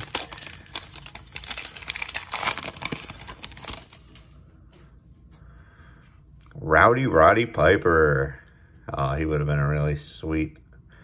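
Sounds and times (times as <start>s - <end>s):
foil card pack crinkling: 0.0s - 4.4s.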